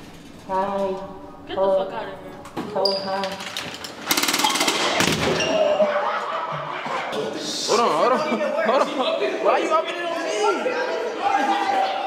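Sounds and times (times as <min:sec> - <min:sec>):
rapid gunfire-like rattle: 0:04.0 - 0:05.2.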